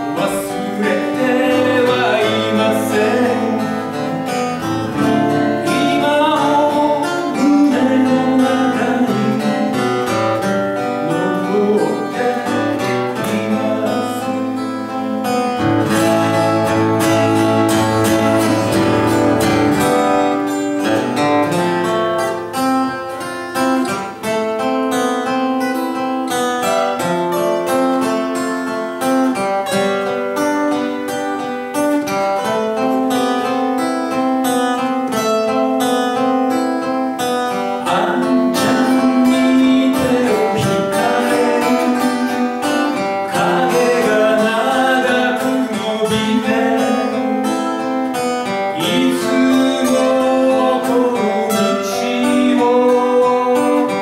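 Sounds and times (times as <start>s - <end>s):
acoustic guitars strumming chords: 0.0s - 54.0s.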